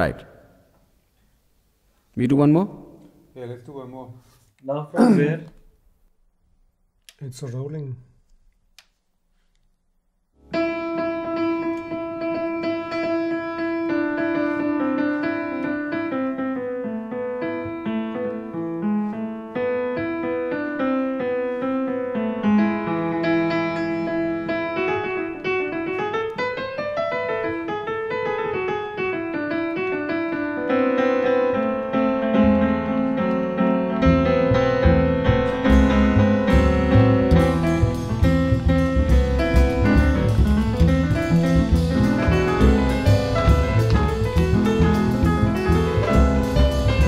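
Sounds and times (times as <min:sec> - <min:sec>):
jazzy piano melody: 0:10.5 - 0:47.0
deep notes and beats: 0:34.1 - 0:47.0.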